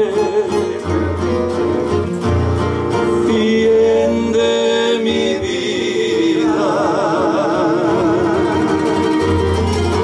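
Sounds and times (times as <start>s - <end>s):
plucked acoustic guitars: 0.0s - 10.0s.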